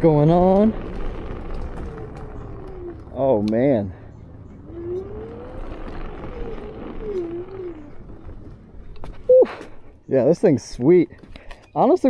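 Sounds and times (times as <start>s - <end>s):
electric scooter motor whining: 0.0s - 9.3s
rough rumble: 0.0s - 10.0s.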